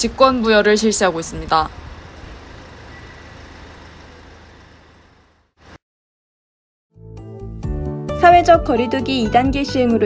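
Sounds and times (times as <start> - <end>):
distant traffic hum: 0.0 - 5.8.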